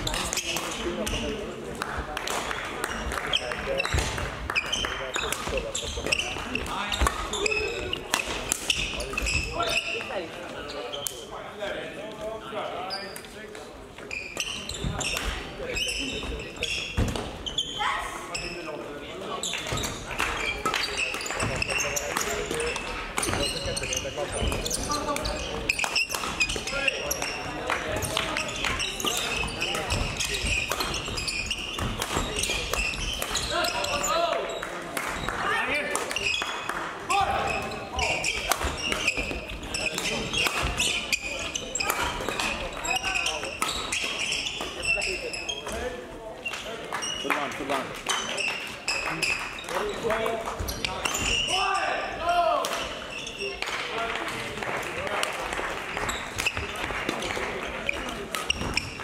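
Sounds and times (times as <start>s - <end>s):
players' voices: 0.0s - 59.0s
sneakers squeaking on court floor: 2.9s - 11.3s, 12.8s - 13.3s, 14.0s - 35.4s, 36.0s - 53.6s, 55.9s - 59.0s
rackets striking shuttlecocks: 28.0s - 33.8s, 38.1s - 44.8s.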